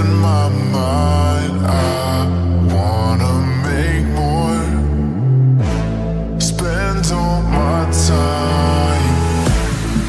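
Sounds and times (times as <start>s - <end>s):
bass-boosted house music: 0.0s - 10.0s.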